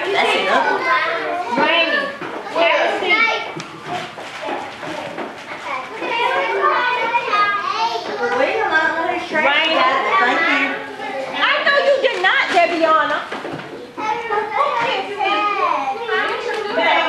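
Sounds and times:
young children talking and calling out: 0.0 - 12.6, 13.5 - 17.0.

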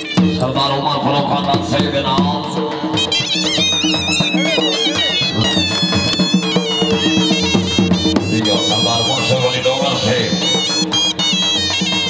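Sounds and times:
drum beating: 0.0 - 12.0
reed pipes melody: 0.0 - 12.0.

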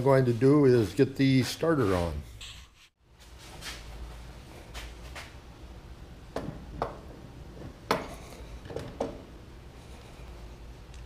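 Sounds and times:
metal knocks and clunks: 6.3 - 9.3.

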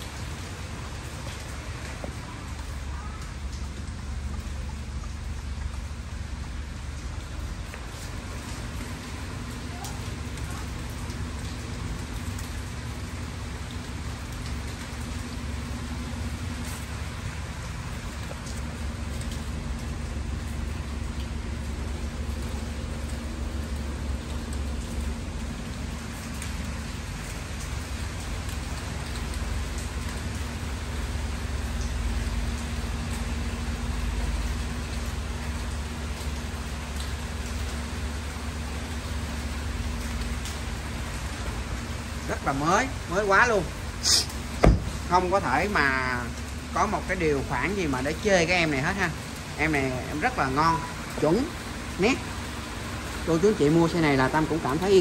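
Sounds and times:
rain falling: 0.0 - 55.0.

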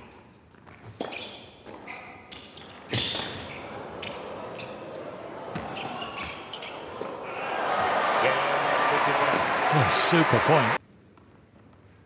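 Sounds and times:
crowd applause and cheering: 3.6 - 10.8.

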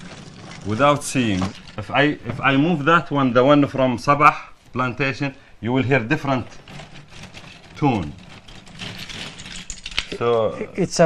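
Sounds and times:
wood pieces clicking and rattling: 0.0 - 3.3, 6.3 - 10.5.

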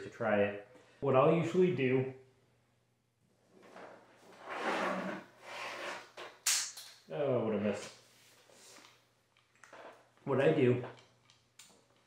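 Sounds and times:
cable rustling and rubbing: 3.5 - 6.4.

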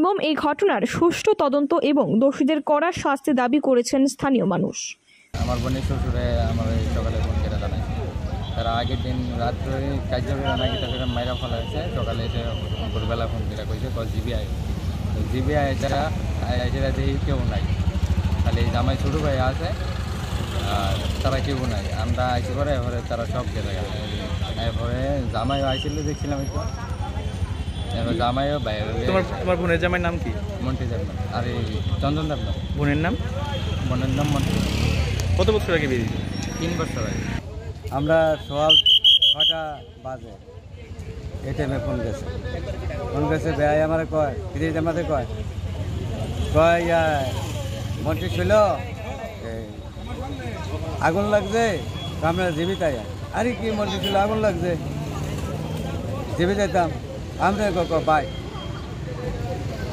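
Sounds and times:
road traffic rumble: 5.3 - 59.9
man speaking: 5.4 - 17.7, 27.9 - 34.6
man talking: 5.4 - 17.8, 20.6 - 26.6, 27.9 - 34.6, 37.9 - 40.4.

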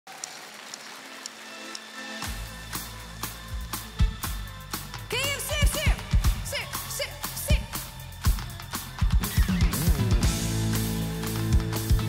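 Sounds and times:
live band playing pop song: 2.2 - 12.0.

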